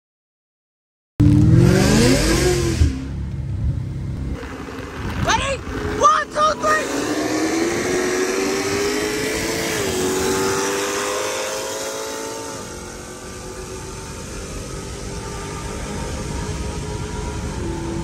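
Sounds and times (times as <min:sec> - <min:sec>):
car engine at full throttle: 0:01.2 - 0:18.0
tyre and road noise: 0:01.2 - 0:18.0.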